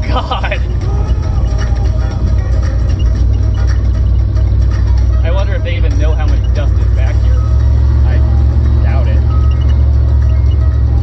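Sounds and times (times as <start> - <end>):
music with singing voice: 0.0 - 11.0
wind and road noise rumble: 0.0 - 11.0.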